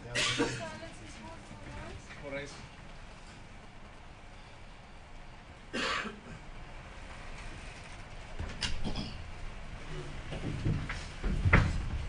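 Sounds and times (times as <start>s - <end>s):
person coughing: 0.1s - 0.8s, 5.7s - 6.4s, 8.8s - 9.2s
knock: 10.4s - 11.8s.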